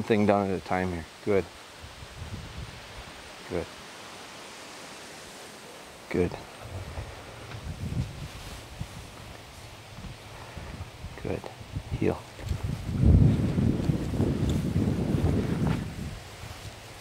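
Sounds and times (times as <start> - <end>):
low rustling: 0.0 - 17.0
open-air background hiss: 0.0 - 17.0.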